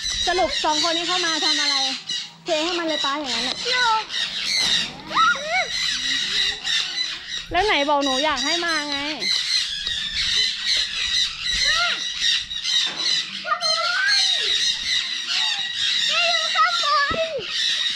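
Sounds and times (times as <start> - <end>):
parrots squawking and chattering: 0.0 - 17.9.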